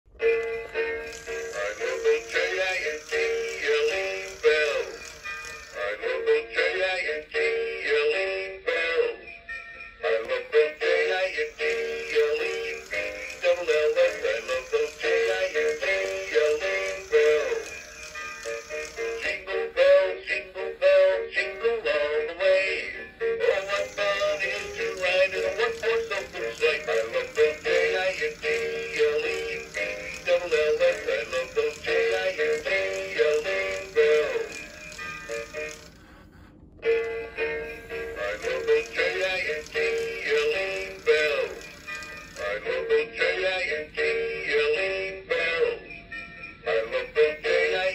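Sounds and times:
christmas song through small speaker: 0.2 - 47.9.

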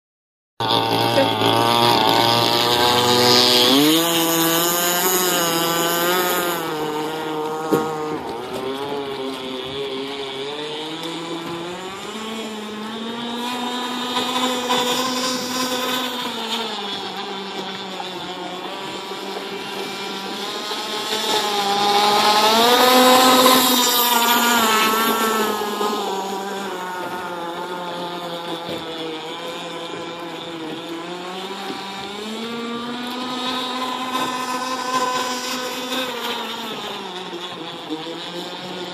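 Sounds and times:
electric motor whining: 0.6 - 38.9.

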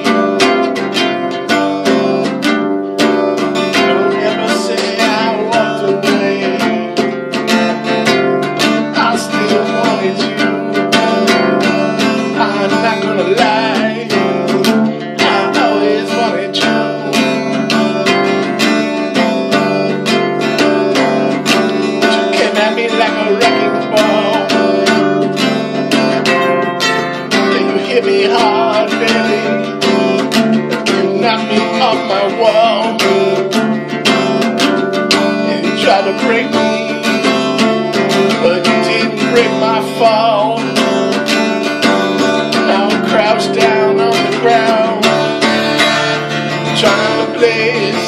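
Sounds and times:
acoustic guitar strumming: 0.0 - 48.0.

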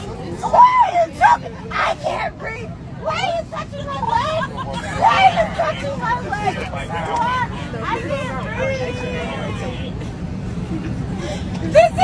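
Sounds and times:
airplane cabin hum: 0.0 - 12.0
people talking over one another: 0.0 - 12.0.

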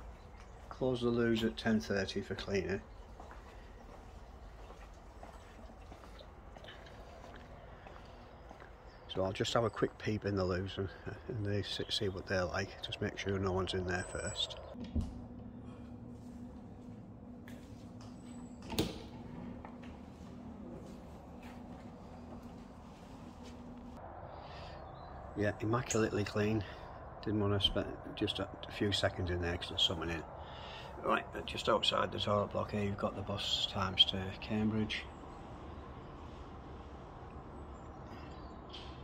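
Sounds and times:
steady low hum: 0.0 - 39.0
low steady rumble: 9.9 - 38.6.

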